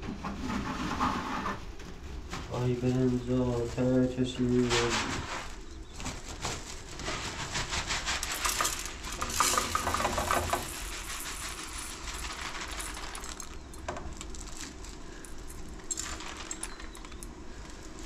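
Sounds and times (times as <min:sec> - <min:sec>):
cloth sack shaken: 0:01.8 - 0:18.0
grain pattering into metal pot: 0:08.1 - 0:18.0.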